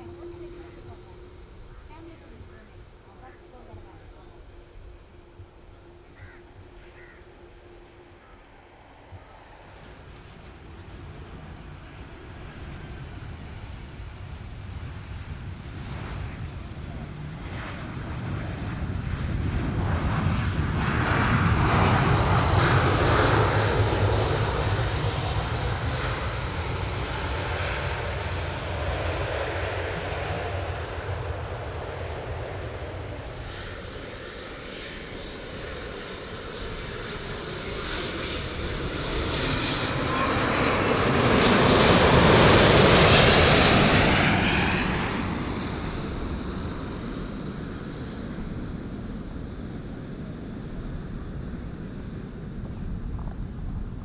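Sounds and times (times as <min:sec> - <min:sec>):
jet passing overhead: 0:00.0 - 0:54.0
jet engines reverse thrust: 0:04.8 - 0:54.0.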